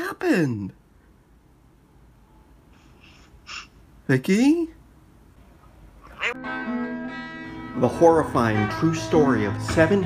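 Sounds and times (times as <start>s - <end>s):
soft breath: 2.3s - 3.8s
sharp intake of breath: 2.6s - 3.8s.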